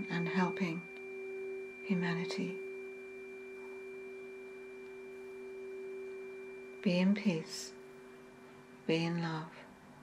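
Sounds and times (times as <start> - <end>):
tuning fork tone: 0.0 - 10.0.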